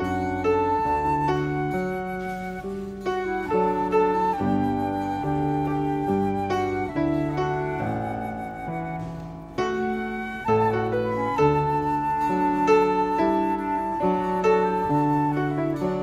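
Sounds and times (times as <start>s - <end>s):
acoustic guitar: 0.0s - 16.0s
flute and clarinet melody: 0.0s - 16.0s
piano: 0.0s - 16.0s.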